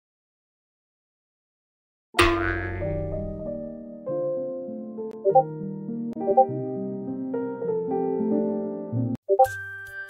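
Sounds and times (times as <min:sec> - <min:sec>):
keyboard background music: 0:02.6 - 0:10.0.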